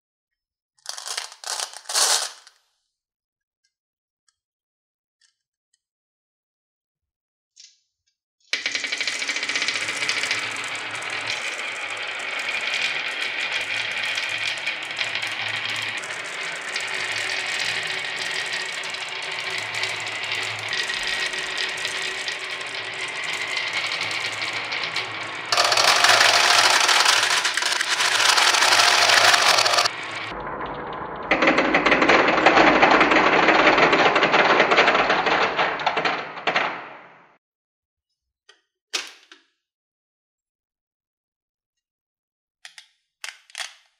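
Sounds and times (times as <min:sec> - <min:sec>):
small balls rattling down wooden grooves: 0:00.8 - 0:02.5, 0:08.6 - 0:30.4, 0:31.3 - 0:37.2.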